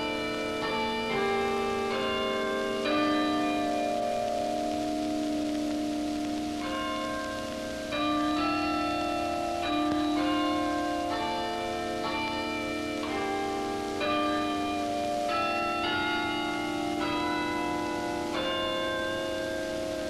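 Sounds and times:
chime of bells playing slow tune: 0.0s - 20.0s.

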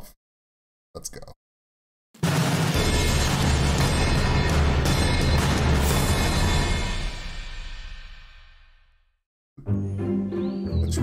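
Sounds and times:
theme music low chord ringing: 2.2s - 7.7s.

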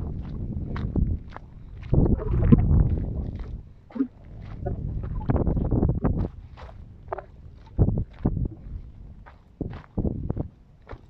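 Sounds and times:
low rumble: 0.0s - 10.7s
footsteps crunching on stony dirt: 0.0s - 11.0s.

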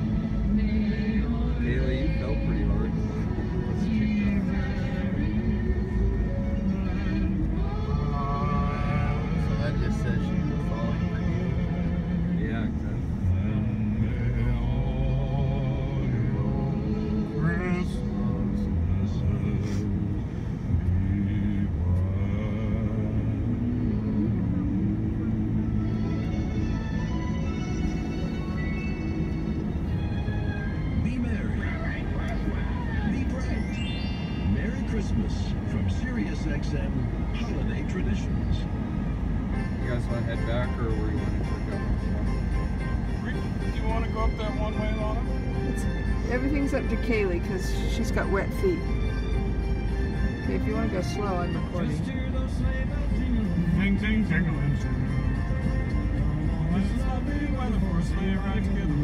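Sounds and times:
car driving rumble: 0.0s - 59.0s
christmas song on car radio: 0.0s - 59.0s.

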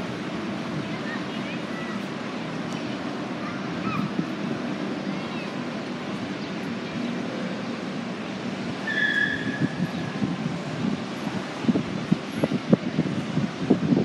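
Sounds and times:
outdoor rushing noise: 0.0s - 14.0s
traffic roar: 0.0s - 14.0s
high whistle-like tone: 8.8s - 9.8s.

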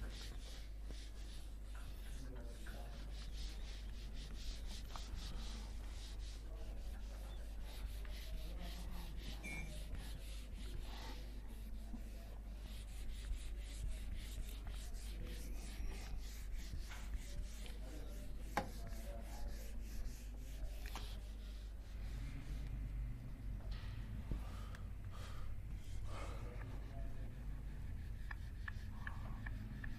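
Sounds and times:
eraser rubbing on whiteboard: 0.0s - 22.8s, 25.7s - 29.9s.

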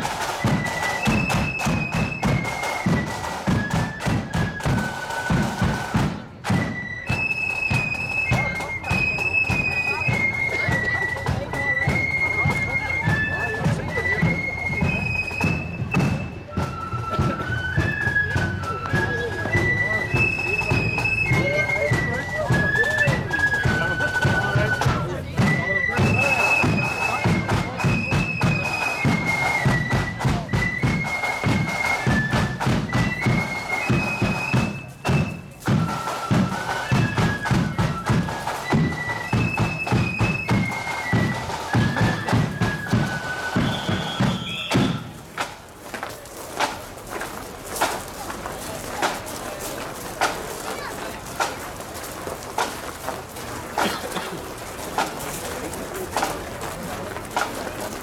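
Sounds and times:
marching band melody: 0.0s - 58.0s
steady drumbeats: 0.0s - 58.0s.

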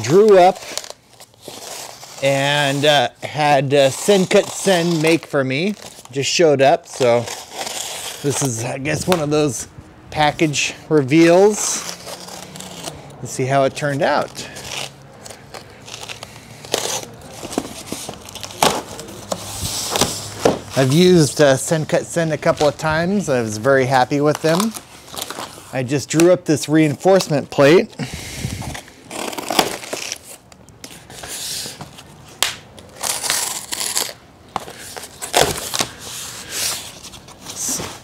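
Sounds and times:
cardboard tearing and rustling: 0.0s - 9.6s, 11.2s - 13.0s, 14.0s - 26.3s, 27.1s - 38.0s
cardboard ripping: 3.9s - 6.2s, 6.8s - 9.6s, 11.2s - 13.0s, 14.0s - 21.5s, 28.3s - 31.8s, 32.4s - 38.0s.

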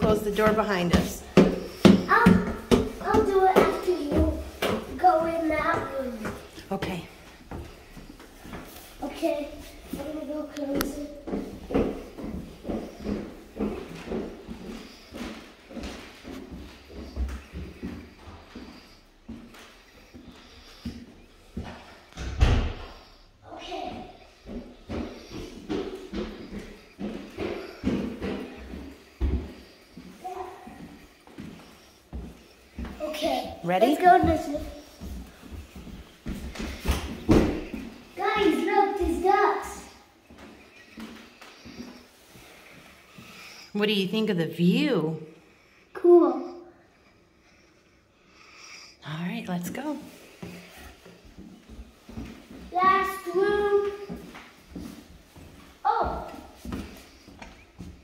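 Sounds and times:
footsteps on carpeted stairs: 0.0s - 43.4s, 49.4s - 58.0s.

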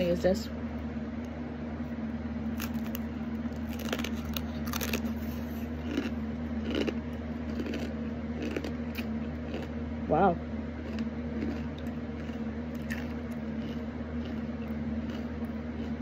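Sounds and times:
steady low hum: 0.0s - 16.0s
crisp bread crunching: 2.5s - 9.8s, 10.8s - 16.0s.

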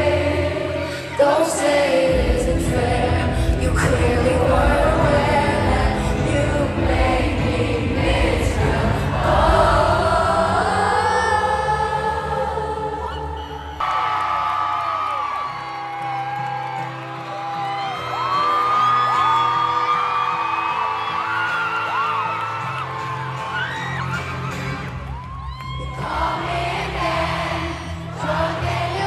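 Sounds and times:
live concert music with synth chords: 0.0s - 29.0s
crowd screaming and whooping: 12.8s - 29.0s.

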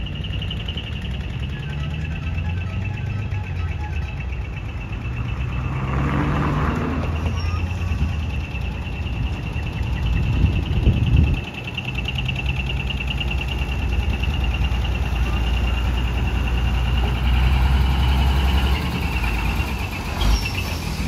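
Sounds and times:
diesel truck engine running: 0.0s - 21.0s.

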